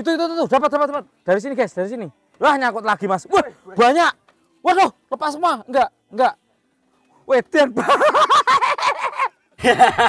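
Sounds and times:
man laughing loudly: 0:07.8 - 0:10.0.

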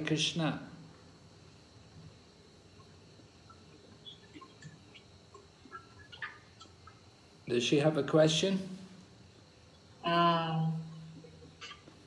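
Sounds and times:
faint high-pitched sounds: 0:00.0 - 0:07.5, 0:08.6 - 0:12.0.

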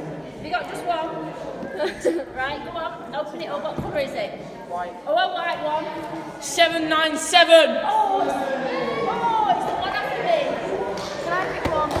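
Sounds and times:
people talking in echoing room: 0:00.0 - 0:12.0.

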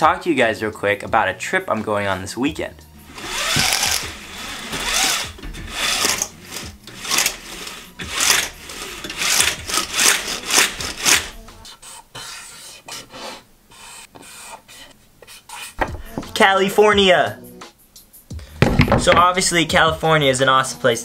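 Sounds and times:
marker scratching across cardboard: 0:12.2 - 0:15.8.

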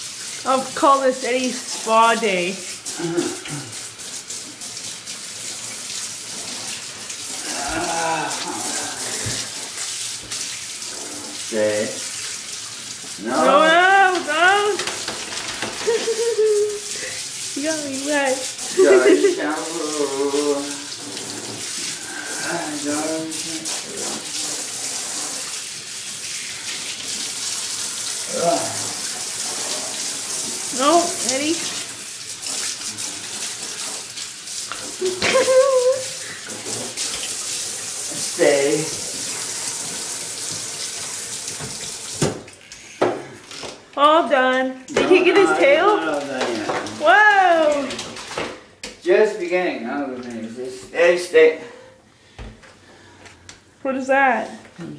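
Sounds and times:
shower water running into bathtub: 0:00.0 - 0:54.9
low voice-like moan: 0:03.0 - 0:03.7, 0:07.3 - 0:09.3, 0:28.3 - 0:28.9.

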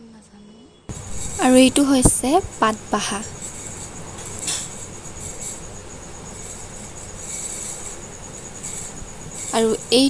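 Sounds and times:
faint background hiss: 0:00.2 - 0:10.0
insects trilling: 0:00.9 - 0:10.0.

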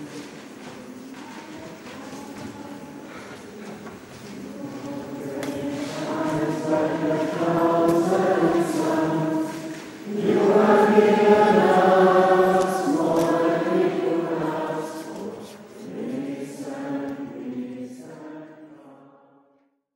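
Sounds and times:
group singing a devotional song: 0:00.0 - 0:19.6.

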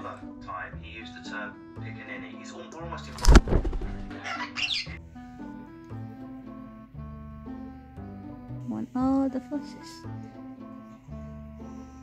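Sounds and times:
parrot call: 0:04.2 - 0:05.0.

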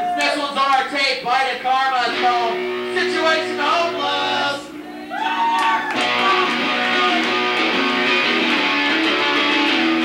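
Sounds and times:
punk rock band playing: 0:01.5 - 0:10.0
electric guitar strummed hard: 0:01.8 - 0:04.8, 0:05.8 - 0:10.0.

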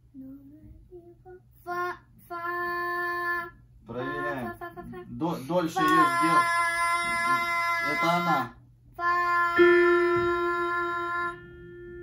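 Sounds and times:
digital piano single held note: 0:09.6 - 0:12.0.

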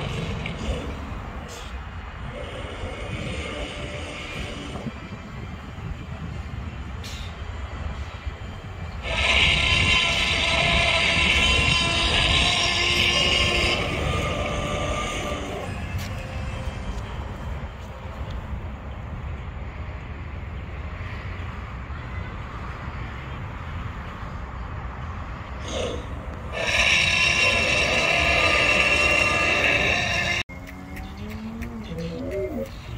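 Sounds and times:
low outdoor rumble: 0:00.0 - 0:32.9.

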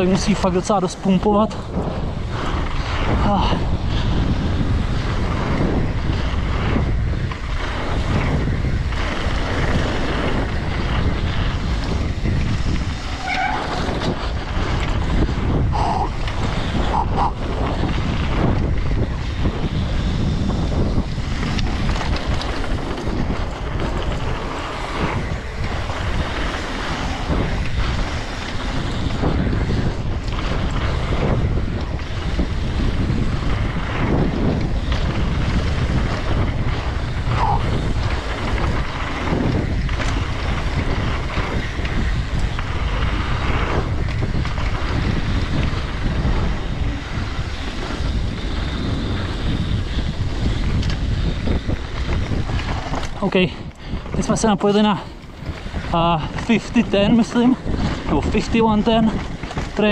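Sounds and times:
bike knocks and rattles: 0:00.0 - 0:59.9
bike tyre noise on dirt: 0:00.0 - 0:59.9
wind buffeting microphone: 0:00.0 - 0:59.9.

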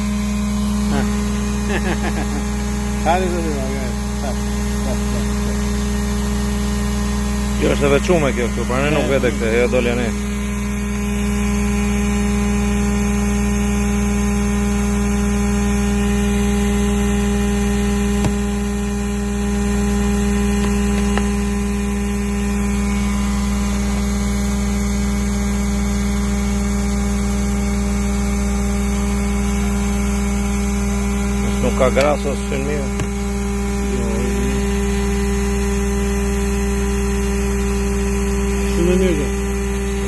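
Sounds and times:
hydraulic power unit hum: 0:00.0 - 0:40.0.

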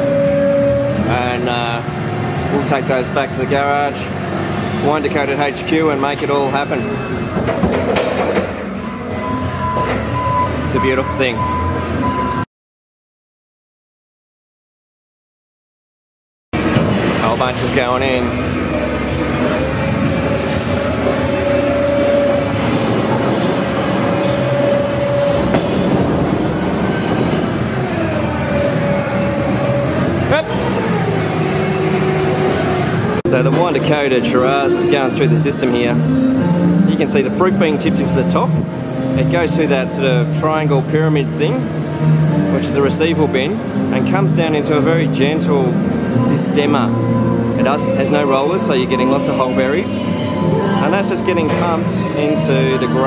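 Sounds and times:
machinery clattering: 0:00.7 - 0:08.8, 0:16.6 - 0:36.0
rising sweep: 0:18.3 - 0:37.0
sharp knocks: 0:25.4 - 0:26.4.

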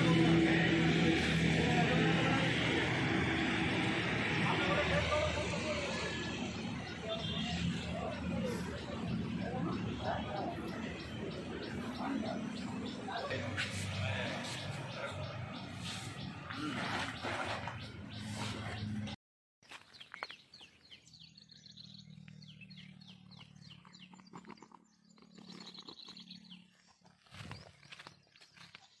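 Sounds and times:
jumble of voices: 0:00.0 - 0:16.8
small bird chirping: 0:19.7 - 0:29.0.

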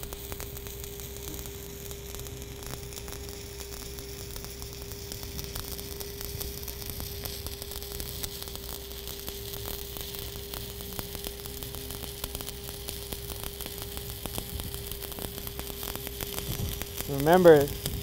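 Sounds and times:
steady hum: 0:00.0 - 0:18.0
welding arc crackling: 0:00.0 - 0:18.0.

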